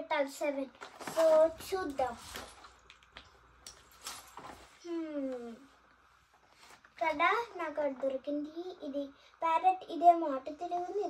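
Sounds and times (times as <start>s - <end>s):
child humming: 4.8s - 5.7s.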